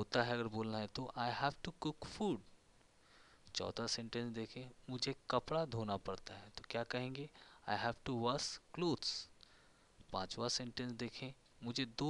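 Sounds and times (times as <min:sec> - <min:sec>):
man speaking: 0:00.0 - 0:02.5, 0:03.5 - 0:09.4, 0:10.1 - 0:12.0.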